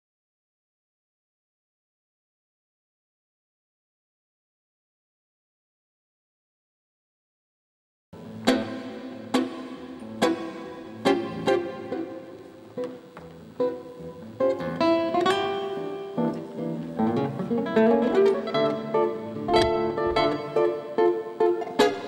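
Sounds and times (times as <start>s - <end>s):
acoustic guitar playing tango: 8.2s - 22.0s.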